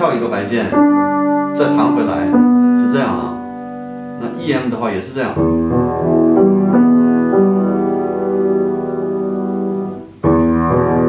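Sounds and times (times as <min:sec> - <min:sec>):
piano broken-chord arpeggio: 0:00.0 - 0:11.0.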